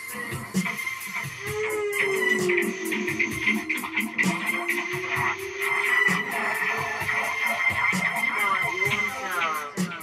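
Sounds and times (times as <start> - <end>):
drums and cymbals: 0.0 - 10.0.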